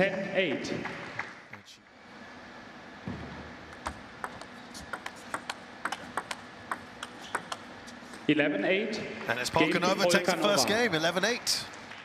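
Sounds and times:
table tennis ball clicking: 3.7 - 7.7.

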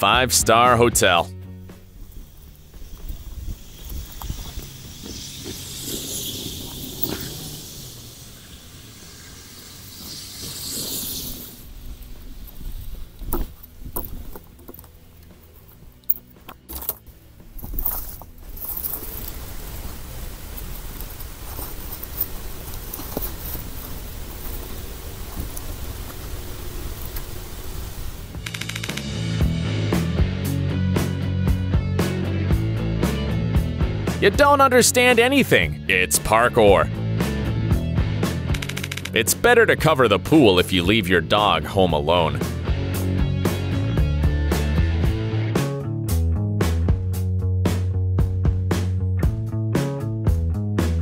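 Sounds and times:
hissing rustle: 1.7 - 16.2, 17.6 - 28.8
rock music with plucked guitar: 28.4 - 51.0.

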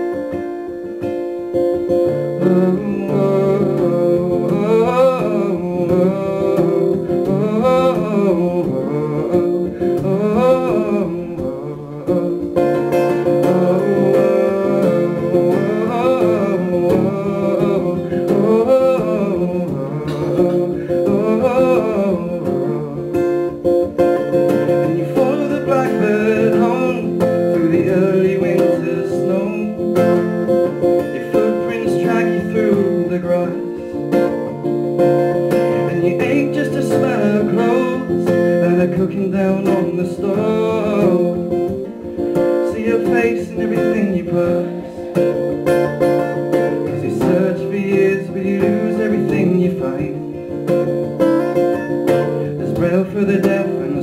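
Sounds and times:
acoustic guitar strumming: 0.0 - 54.0
man singing: 1.5 - 54.0.

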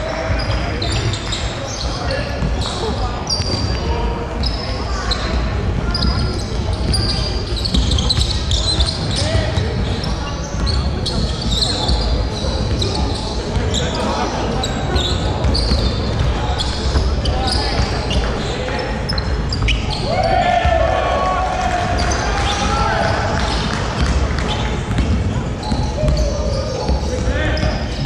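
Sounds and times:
sneaker squeaks: 0.0 - 20.9, 21.8 - 28.0
basketball bouncing: 5.7 - 9.9, 15.1 - 19.8, 23.3 - 28.0.

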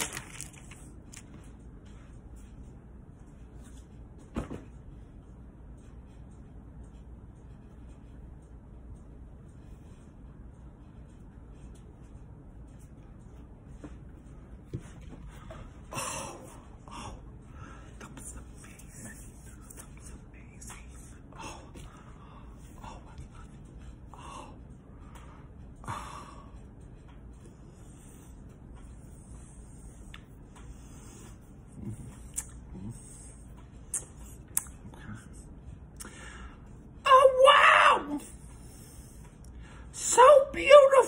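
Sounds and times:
faint low hum: 0.0 - 41.0
faint room noise: 0.0 - 41.0.

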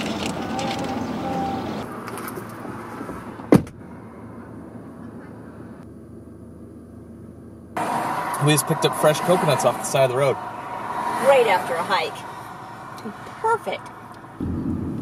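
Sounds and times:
car cabin road noise: 0.0 - 15.0
car engine hum: 0.0 - 15.0
car door shutting: 3.4 - 3.8.

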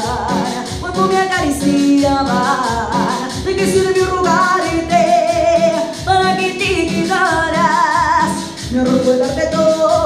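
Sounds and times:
backing track with steady beat: 0.0 - 10.0.

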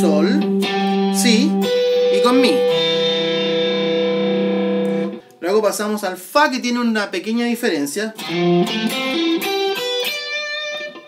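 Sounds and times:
electric guitar chord ringing: 0.0 - 5.3, 8.2 - 11.0.

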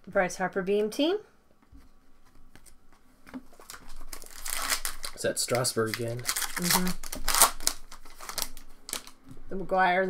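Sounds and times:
foil wrapper crinkling: 3.5 - 9.2.

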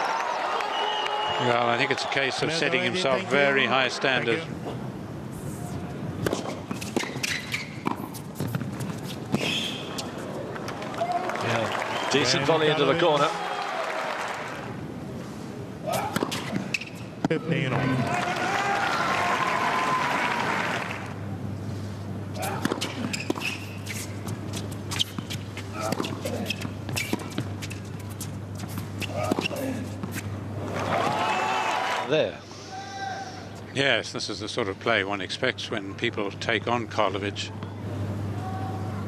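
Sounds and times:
crowd applause and cheering: 0.0 - 2.7, 10.4 - 14.8, 17.8 - 21.2, 30.6 - 32.1
ball bouncing on hard court: 25.0 - 27.8.

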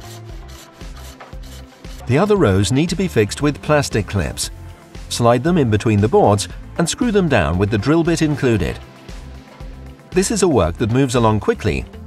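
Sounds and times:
hacksaw cutting board: 0.0 - 2.2
background music: 0.0 - 12.0.

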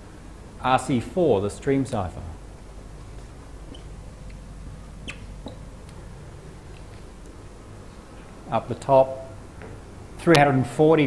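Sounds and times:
low room hum: 0.0 - 11.0
faint short squeaks: 3.6 - 5.7.

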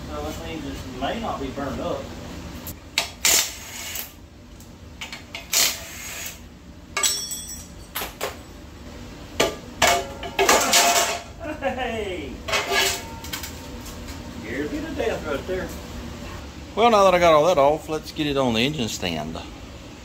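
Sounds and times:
metal clinks on concrete: 7.0 - 8.2.

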